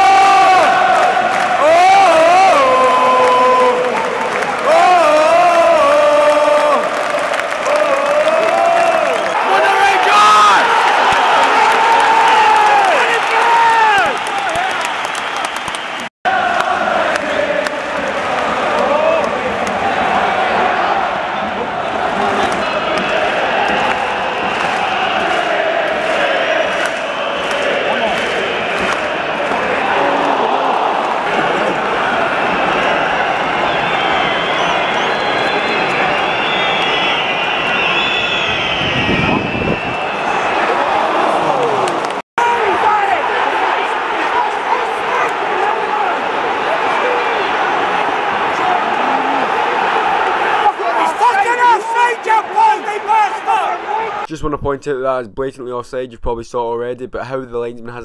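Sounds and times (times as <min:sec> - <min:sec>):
crowd chanting and singing: 0:00.0 - 0:11.9, 0:16.3 - 0:38.9, 0:39.9 - 0:54.3.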